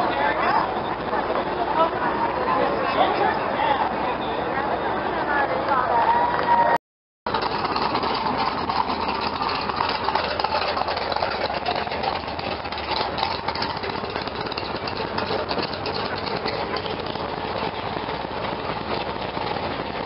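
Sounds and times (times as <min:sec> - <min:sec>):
truck engine running: 0:07.3 - 0:20.0.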